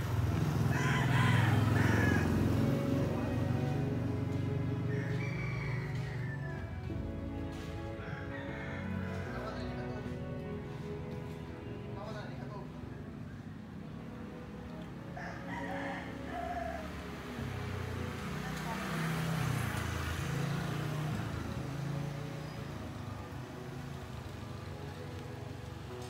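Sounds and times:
rooster crowing: 0.6 - 2.7, 4.7 - 6.9, 8.0 - 9.6, 15.2 - 17.1.

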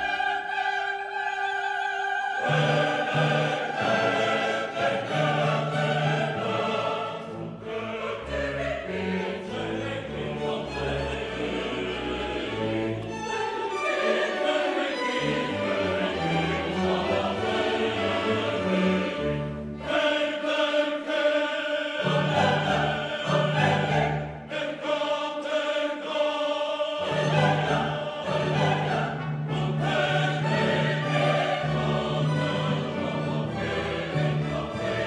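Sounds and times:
choir singing: 0.0 - 35.0
orchestra playing classical piece: 2.4 - 20.0, 22.0 - 24.5, 27.0 - 35.0.

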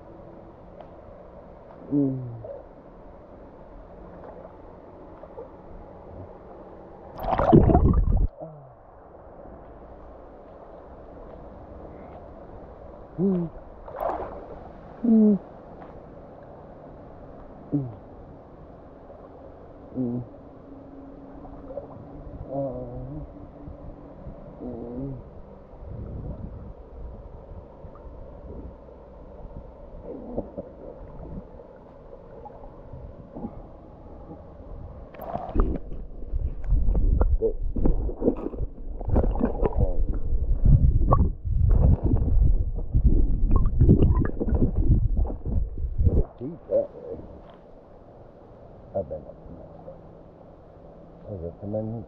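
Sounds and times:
water gurgling and sloshing: 0.0 - 51.2
water splashing and churning: 3.9 - 8.4, 13.4 - 15.5, 35.1 - 47.4.

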